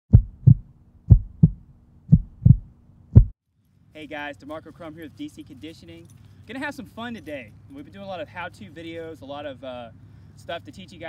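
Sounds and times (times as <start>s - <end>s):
heartbeat thumps: 0.1s - 3.4s.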